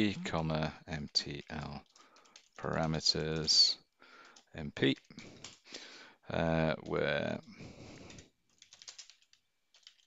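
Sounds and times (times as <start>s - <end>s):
typing on computer keyboard: 0.9s - 6.0s, 6.6s - 10.0s.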